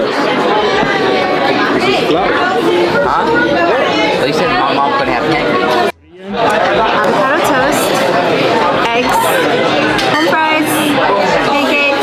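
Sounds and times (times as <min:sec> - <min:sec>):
restaurant chatter: 0:00.0 - 0:12.0.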